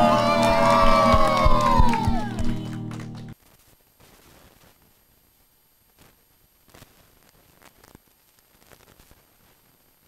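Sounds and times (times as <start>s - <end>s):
children cheering: 0.0s - 3.2s
hand claps: 0.0s - 3.4s.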